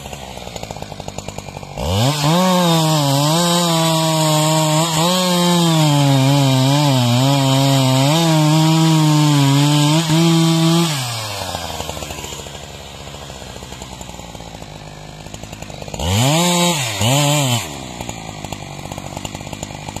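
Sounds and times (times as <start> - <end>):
chainsaw cutting log: 0.0 - 20.0
chainsaw idling and revving: 0.0 - 20.0.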